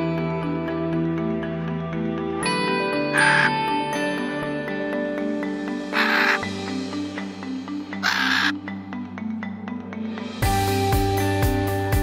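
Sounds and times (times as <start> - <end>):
background music with steady tones: 0.0 - 12.0
macaw squawks: 3.1 - 3.6, 5.9 - 6.6, 7.9 - 8.6.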